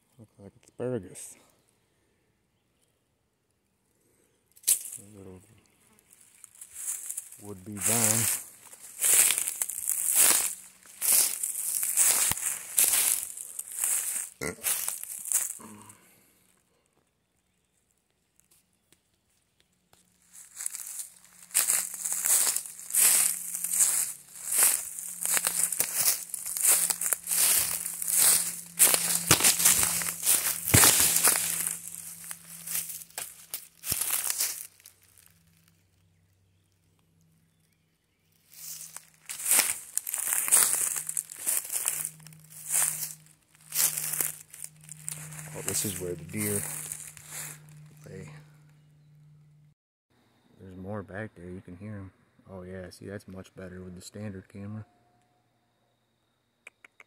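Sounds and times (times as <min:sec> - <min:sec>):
footsteps crunching dry leaves: 0:04.6 - 0:05.3, 0:05.9 - 0:16.0, 0:20.0 - 0:35.8, 0:38.3 - 0:48.6.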